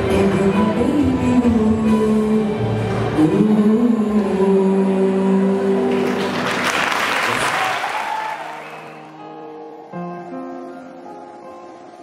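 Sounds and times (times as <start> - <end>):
man singing a long note: 0.0 - 6.1
audience applause: 5.9 - 9.2.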